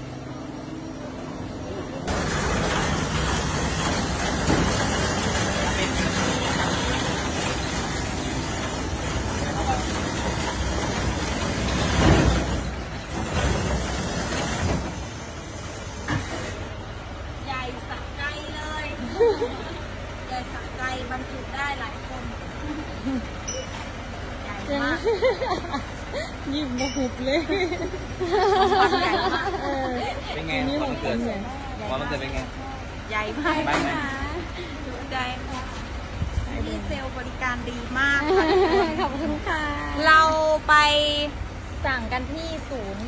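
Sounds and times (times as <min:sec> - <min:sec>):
loud hissing from truck: 0:02.0 - 0:09.6, 0:10.2 - 0:17.1
voices: 0:16.5 - 0:43.0.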